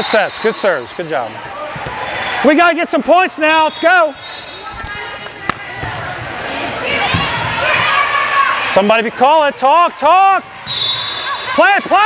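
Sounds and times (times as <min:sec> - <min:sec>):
hubbub of gym hall: 0:00.0 - 0:12.0
voices calling: 0:02.3 - 0:05.8.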